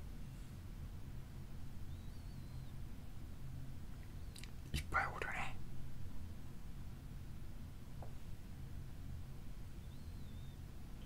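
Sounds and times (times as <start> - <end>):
low room hum: 0.0 - 11.0
lip clicks: 4.3 - 4.6
man whispering: 4.7 - 5.6.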